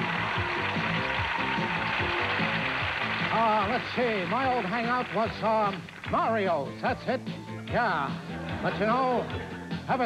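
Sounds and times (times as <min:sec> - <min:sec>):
instrumental music with steady beat: 0:05.3 - 0:10.0.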